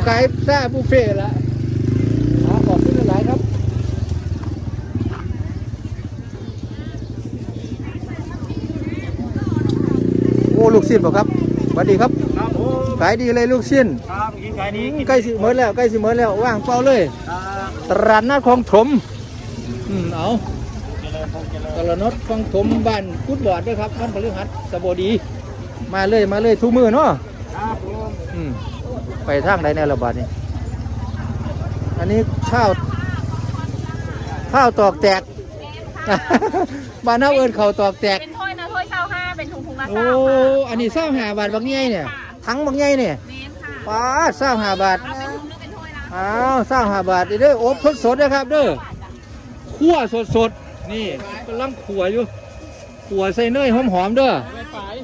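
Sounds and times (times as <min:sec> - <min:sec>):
faint voices: 0:00.0 - 0:55.0
small engine running: 0:48.0 - 0:55.0.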